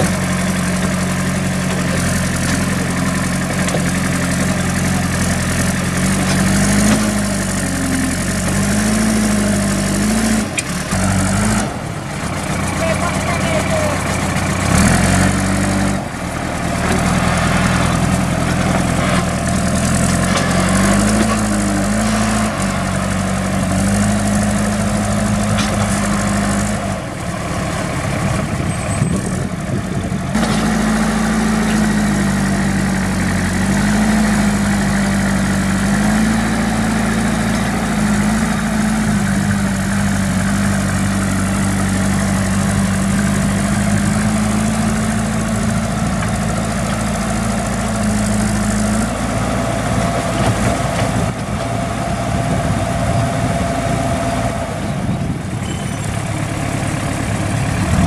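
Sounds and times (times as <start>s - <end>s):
diesel engine running under load: 0.0s - 58.0s.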